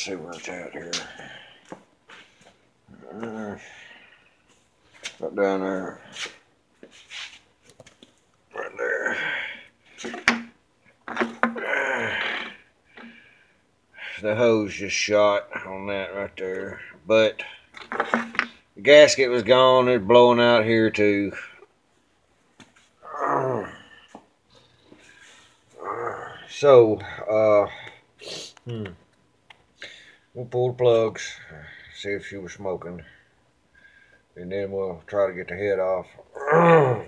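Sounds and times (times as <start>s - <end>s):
man groaning: 2.9s - 3.8s, 8.6s - 9.6s, 11.4s - 12.6s, 23.0s - 24.0s, 25.8s - 26.5s, 36.3s - 37.0s.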